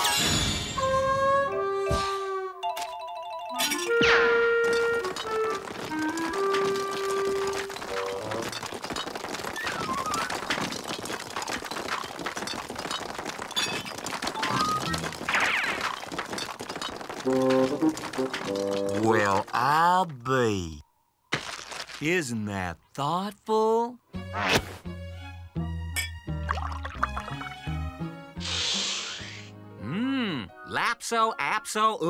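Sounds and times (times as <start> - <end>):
cartoon background music: 0.7 - 8.4, 17.2 - 19.4, 24.1 - 32.0
held musical notes: 17.2 - 19.4
hose spraying ice: 28.4 - 29.5.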